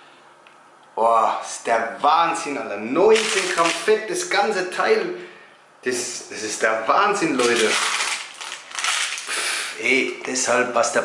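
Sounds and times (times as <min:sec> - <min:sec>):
baking paper crinkling: 0:03.1 - 0:04.1, 0:07.2 - 0:09.5.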